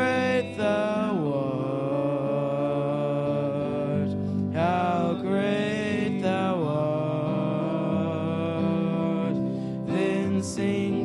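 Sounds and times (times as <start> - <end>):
men singing a worship song: 0.0 - 11.0.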